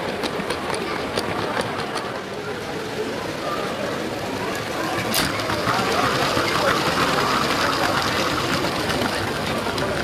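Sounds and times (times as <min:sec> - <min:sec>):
murmur of voices: 0:00.0 - 0:10.0
toy train motor whirring: 0:04.6 - 0:10.0.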